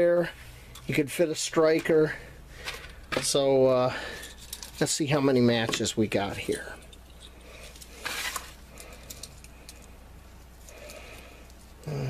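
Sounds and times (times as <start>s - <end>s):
wooden matches rattling: 4.0s - 5.1s.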